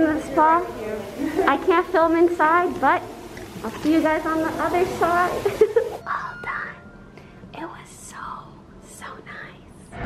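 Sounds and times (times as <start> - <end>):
woman whispering: 7.5 - 9.9.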